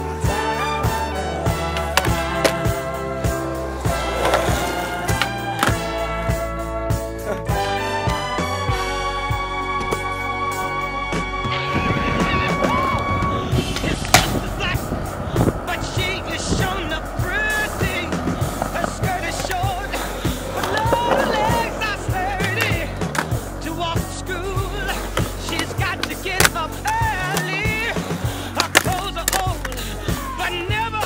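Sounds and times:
skateboard wheels rolling on concrete: 0.0 - 31.0
skateboard clacks: 0.3 - 6.5, 11.5 - 31.0
song with singing: 10.5 - 31.0.

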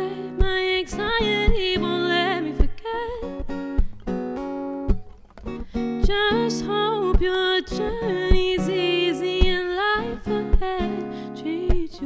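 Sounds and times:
person singing with vibrato: 0.0 - 3.4, 6.0 - 12.0
acoustic guitar strumming: 0.0 - 12.0.

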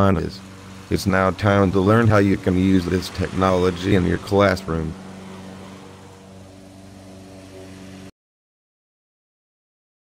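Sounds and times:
steady low hum: 0.0 - 8.1.

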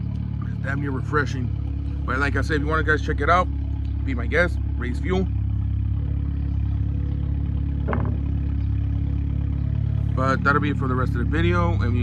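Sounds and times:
low engine hum: 0.0 - 12.0.

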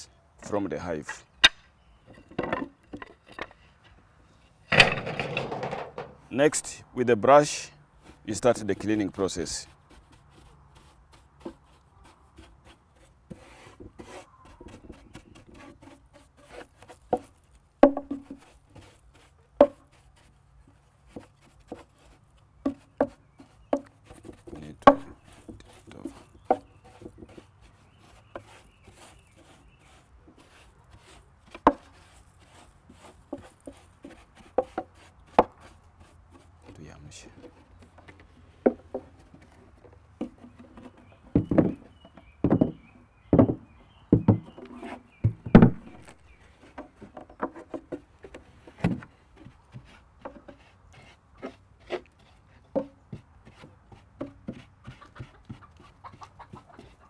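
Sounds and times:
brush scrubbing wood: 7.3 - 42.0, 44.2 - 57.0
brush knocking on wood: 8.0 - 57.0.

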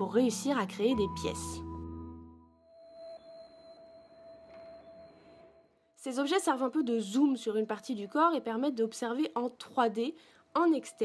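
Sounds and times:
faint sustained ringing tone: 2.6 - 9.0.

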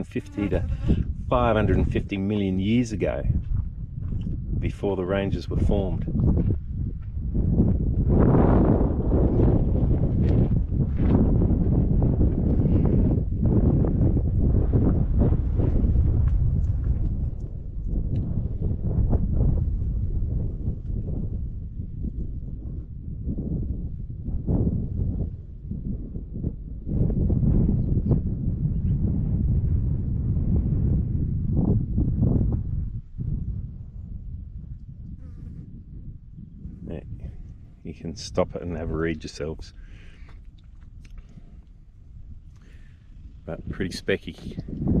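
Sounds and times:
flies buzzing: 0.0 - 1.1
wind buffeting microphone: 0.0 - 45.0.

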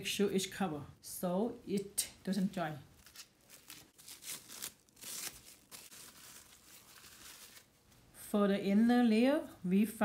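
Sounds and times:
plastic wrap crinkling: 2.9 - 8.0.

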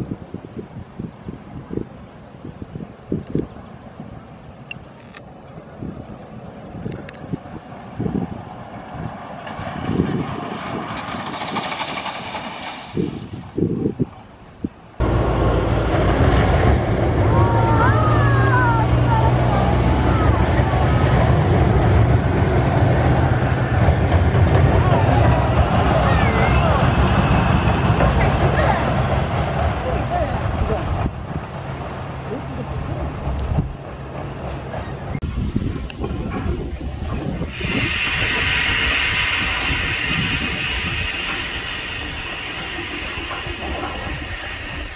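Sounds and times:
roller coaster train rumbling: 0.0 - 44.9
people screaming: 17.3 - 20.4.

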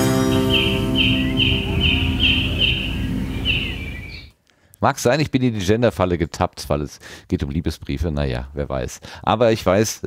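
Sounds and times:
held chord ringing: 0.0 - 3.4
bird-like chirps: 0.0 - 4.4.

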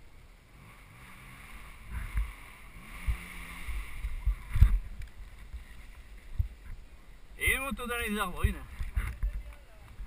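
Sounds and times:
faint background rush: 0.0 - 10.0.

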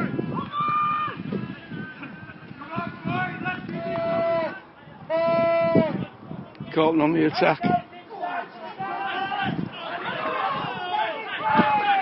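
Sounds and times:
man's voice: 1.4 - 12.0.

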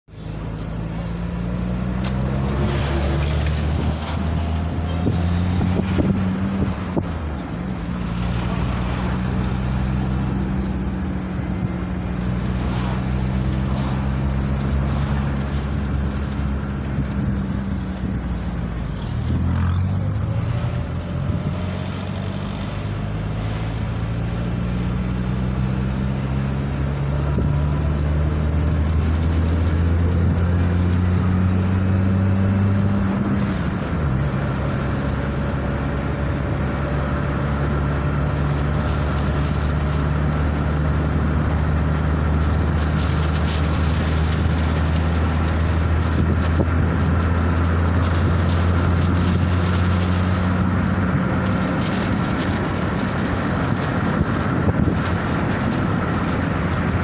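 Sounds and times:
car engine drone: 0.0 - 57.0
road noise inside car: 0.0 - 57.0.

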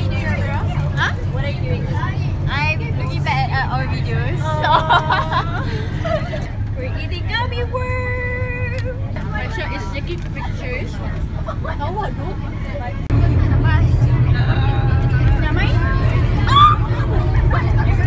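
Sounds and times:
bus rumble: 0.0 - 18.0
teenagers chattering: 0.0 - 18.0.

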